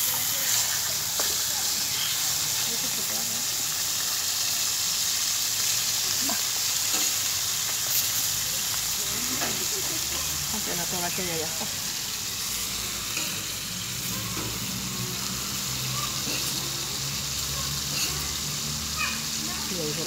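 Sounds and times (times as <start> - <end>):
steaks sizzling: 0.0 - 20.0.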